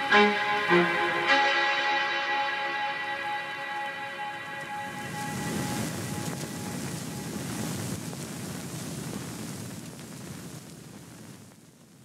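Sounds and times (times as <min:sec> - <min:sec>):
background music with held notes: 0:00.0 - 0:07.3
wind on microphone: 0:04.6 - 0:11.5.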